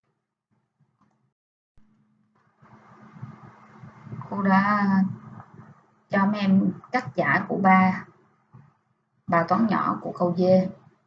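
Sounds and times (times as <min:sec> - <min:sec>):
steady low hum: 0:01.8 - 0:11.0
faint background noise: 0:01.9 - 0:11.0.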